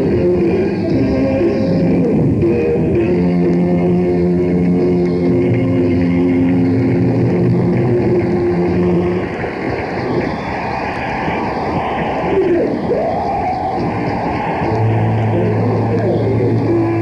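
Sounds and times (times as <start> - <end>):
crowd cheering and applause: 0.0 - 17.0.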